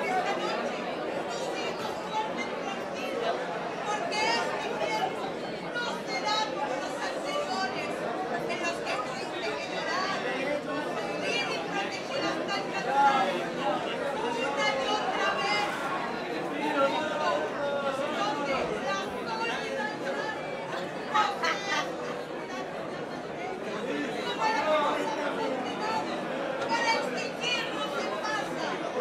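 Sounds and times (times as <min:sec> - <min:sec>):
chatter of voices: 0:00.0 - 0:29.0.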